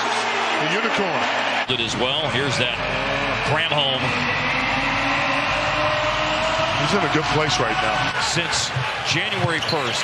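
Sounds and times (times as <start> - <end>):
arena crowd cheering: 0.0 - 10.0.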